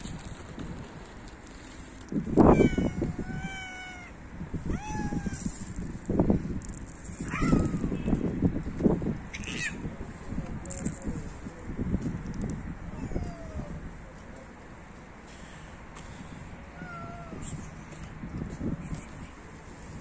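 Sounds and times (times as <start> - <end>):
cats meowing: 2.4 - 5.6, 7.2 - 8.1, 9.3 - 9.9, 12.9 - 13.8, 16.8 - 17.7.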